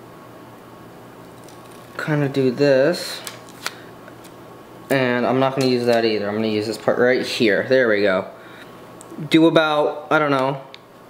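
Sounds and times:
low room hiss: 0.0s - 11.0s
speech: 2.0s - 3.2s, 4.9s - 8.3s, 9.2s - 10.7s.

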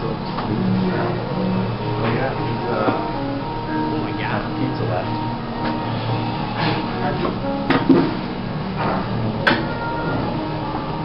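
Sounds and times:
indistinct talk: 0.0s - 7.7s
background music: 0.0s - 11.0s.

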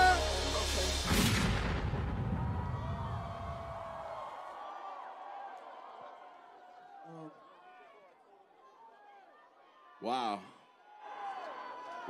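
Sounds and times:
hip-hop track over sound system: 0.0s - 2.0s
heavy boom with echo: 0.4s - 4.0s.

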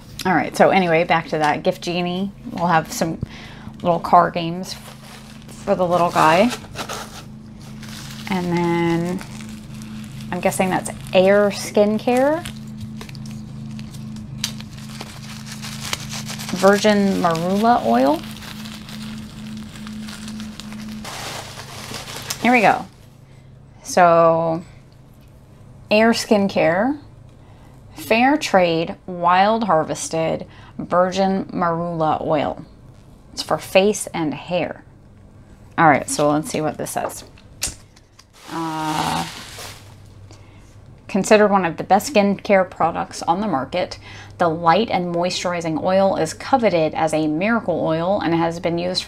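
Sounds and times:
steady low hum: 0.0s - 49.0s
breath noise: 3.2s - 3.8s, 40.2s - 40.9s
packaging clicks and crinkles: 4.7s - 23.0s, 37.7s - 40.2s.

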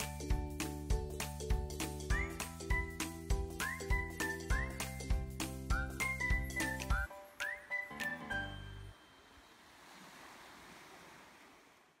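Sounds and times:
music jingle: 0.0s - 9.2s
small waves washing onto beach: 9.1s - 12.0s.

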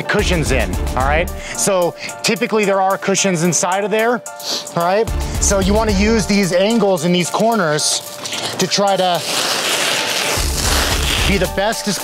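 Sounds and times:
stretch wrap hissing off roll: 7.3s - 12.0s.

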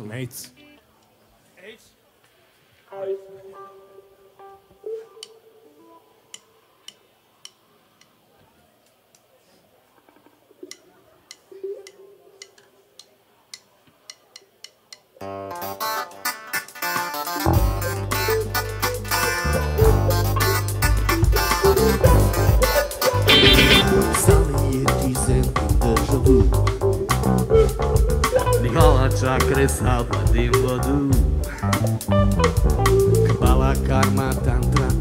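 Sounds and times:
rock band playing: 17.0s - 24.6s, 31.2s - 33.4s
electric guitar: 17.5s - 25.2s.

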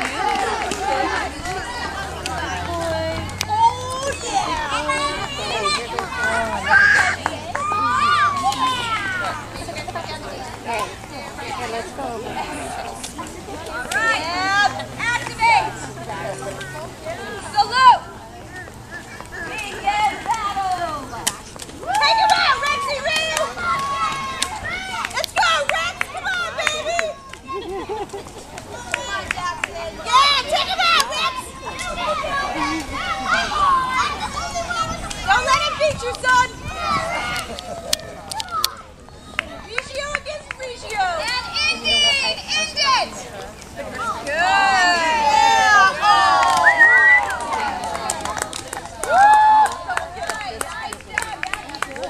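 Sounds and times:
young children chattering: 0.0s - 52.0s.

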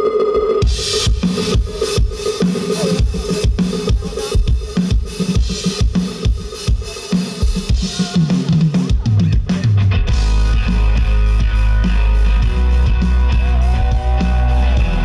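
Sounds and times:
drum kit beat: 0.4s - 15.0s
bass line: 7.8s - 15.0s.

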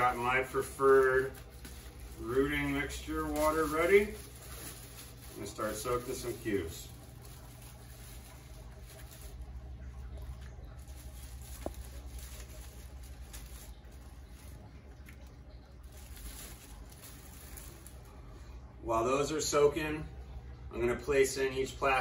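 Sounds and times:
plastic handling patter: 0.0s - 18.6s
steady low hum: 0.0s - 22.0s.

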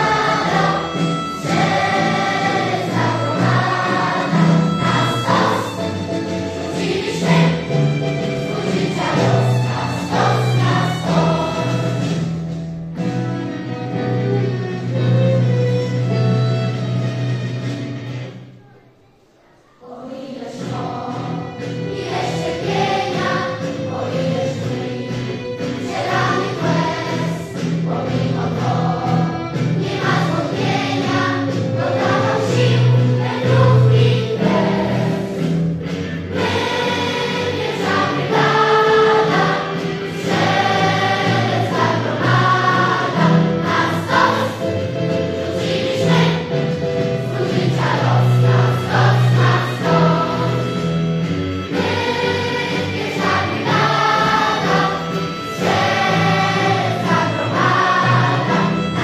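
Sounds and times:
mixed choir singing in parts: 0.0s - 13.1s, 19.8s - 59.0s.

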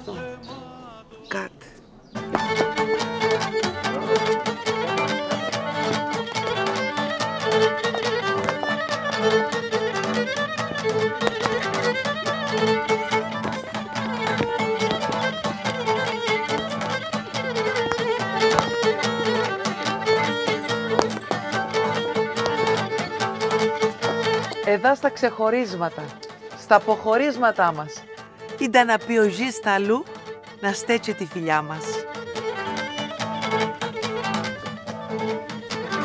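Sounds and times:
bowed lyra melody: 2.1s - 36.0s
fast lute strumming: 2.2s - 36.0s.

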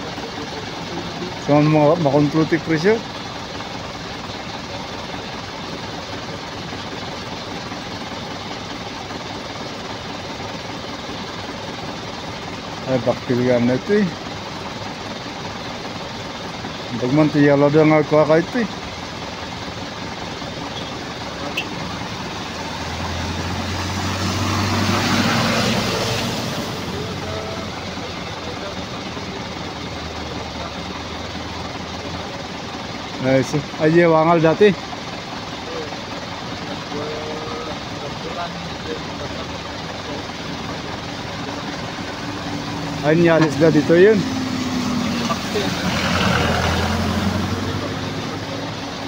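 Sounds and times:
background vehicle noise: 0.0s - 49.0s
light truck driving past: 41.7s - 49.0s.

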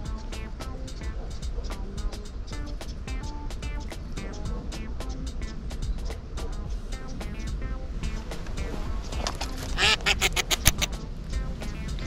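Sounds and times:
duck quacking: 9.2s - 11.0s.

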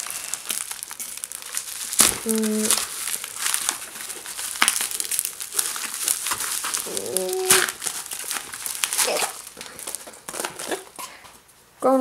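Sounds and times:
bubble wrap crinkling: 0.0s - 11.6s.

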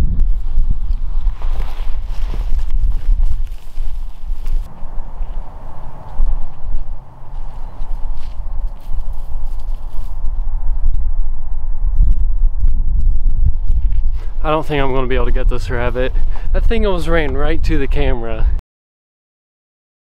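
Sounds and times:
wind rumble on microphone: 0.0s - 18.6s.

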